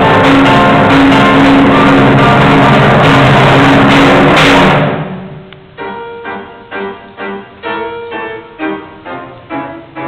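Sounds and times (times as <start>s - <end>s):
piano: 0.0s - 10.0s
timpani roll: 0.0s - 10.0s.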